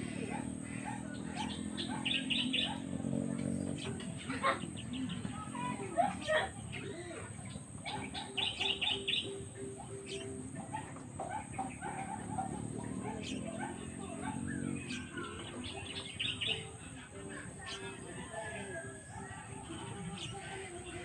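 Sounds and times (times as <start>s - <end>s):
birds chirping and calling: 0.0s - 21.0s.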